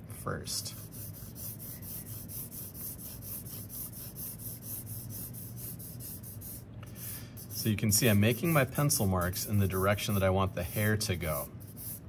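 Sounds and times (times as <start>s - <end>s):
pencil scratching on paper: 0.8s - 12.0s.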